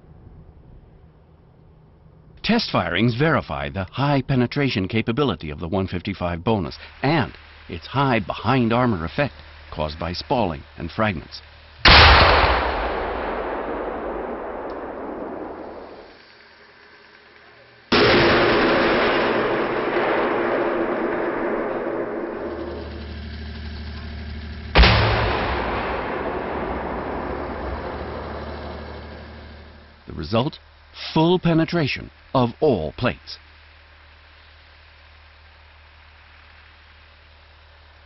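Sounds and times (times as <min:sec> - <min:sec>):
explosions against armour plate: 0:11.8 - 0:16.2, 0:17.9 - 0:23.5, 0:24.7 - 0:29.8.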